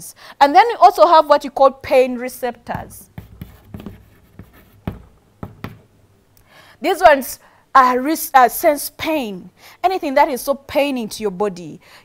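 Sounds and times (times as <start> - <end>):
chalk writing on chalkboard: 2.7 - 5.9.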